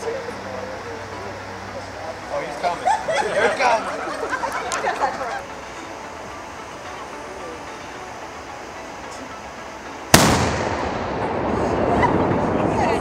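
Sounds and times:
firework bang: 10.1 - 13.0
smoke rushing out: 10.1 - 13.0.

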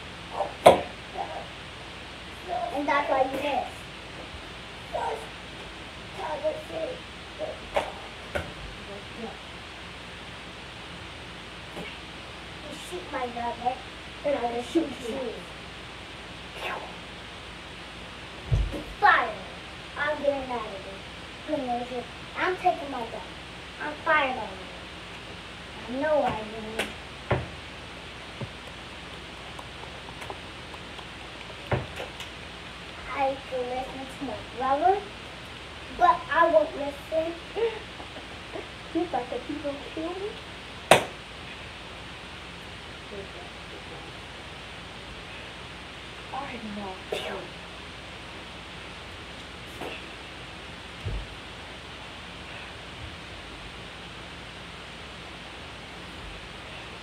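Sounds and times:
steady hiss: 0.0 - 57.0.

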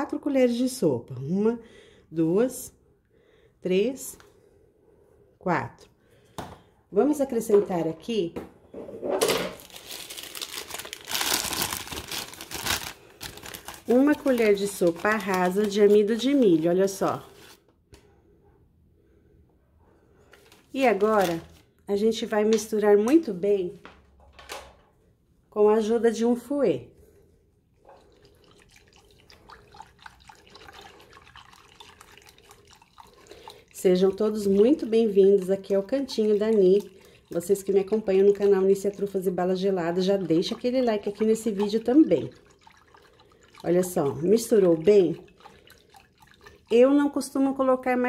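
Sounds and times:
plastic packaging crinkling: 9.5 - 17.6, 20.5 - 21.6
liquid splashing: 27.8 - 47.2.

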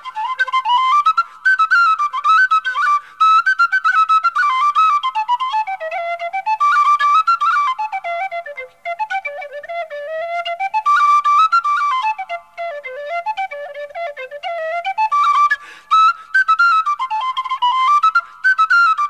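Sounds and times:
flute playing a dance tune: 0.0 - 19.0.

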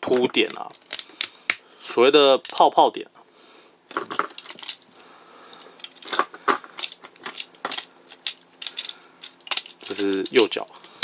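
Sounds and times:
plastic toy parts clicking: 0.1 - 1.6, 5.8 - 10.6.

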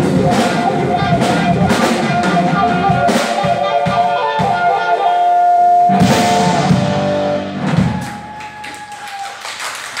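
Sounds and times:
people clapping: 7.9 - 10.0.

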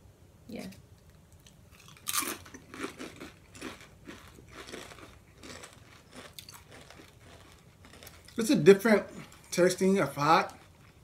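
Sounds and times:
chewing crunches: 1.3 - 11.0
tortilla chips crunching: 1.4 - 11.0.

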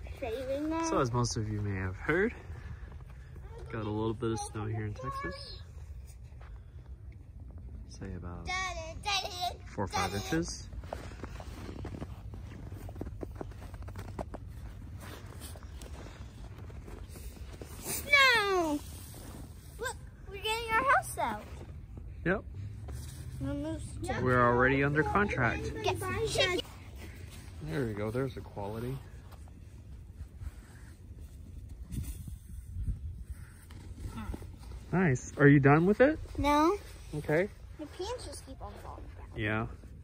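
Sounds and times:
footsteps crunching in snow: 10.4 - 20.0.

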